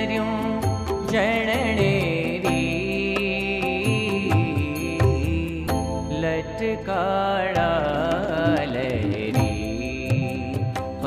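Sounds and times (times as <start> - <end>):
steady percussion beat: 0.0 - 6.3, 7.6 - 11.0
person singing devotional song: 0.0 - 11.0.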